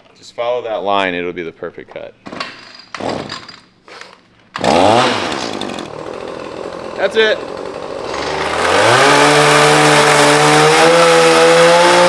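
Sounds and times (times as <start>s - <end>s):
pole saw cutting wood: 4.6s - 12.0s.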